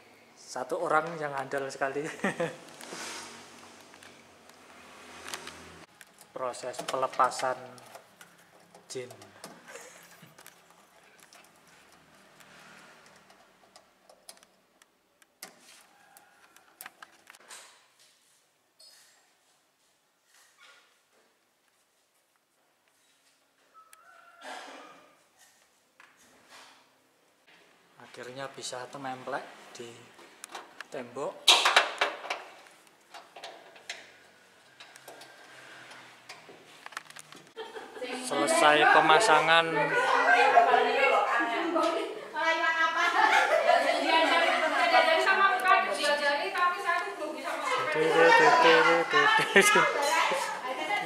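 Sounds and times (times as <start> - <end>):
faint room hiss: 0.0 - 51.0.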